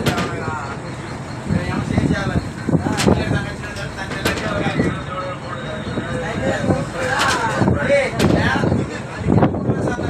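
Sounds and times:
boat noise: 0.0 - 10.0
people talking: 0.0 - 10.0.

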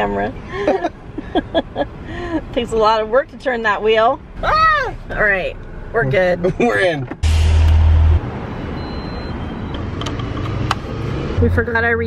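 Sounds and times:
city street traffic: 0.0 - 12.0
loud low rumble: 7.2 - 9.3.

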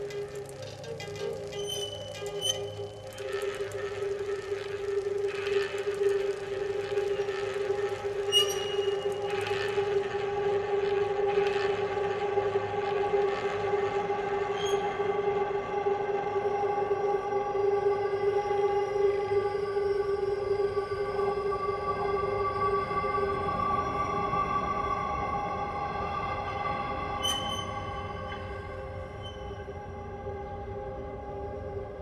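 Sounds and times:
electronic drone of held tones: 0.0 - 31.4.

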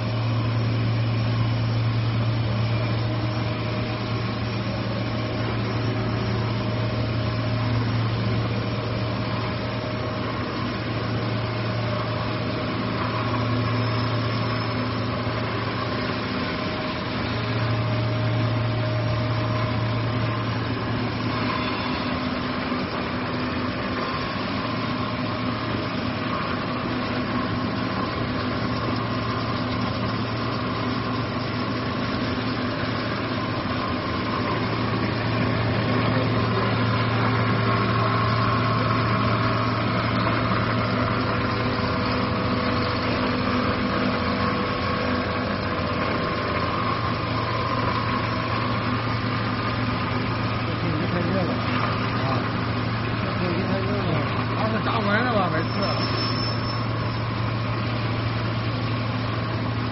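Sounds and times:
machinery humming with low drone: 0.0 - 59.9.

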